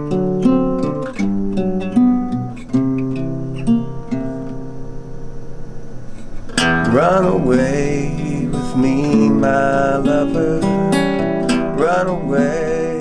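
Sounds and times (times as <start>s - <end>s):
acoustic guitar picked and strummed: 0.0s - 13.0s.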